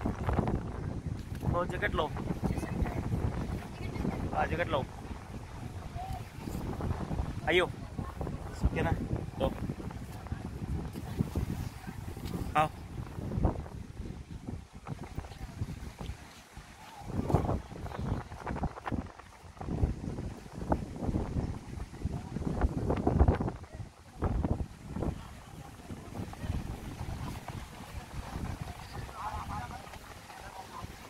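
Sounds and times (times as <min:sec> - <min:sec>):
wind gusting on microphone: 0:00.0 - 0:31.0.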